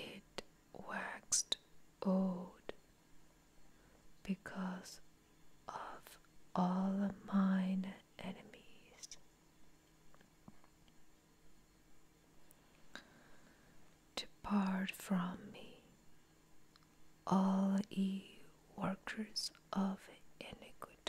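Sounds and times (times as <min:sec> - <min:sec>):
person whispering: 0:05.7 - 0:09.2, 0:14.2 - 0:15.8, 0:17.3 - 0:21.0.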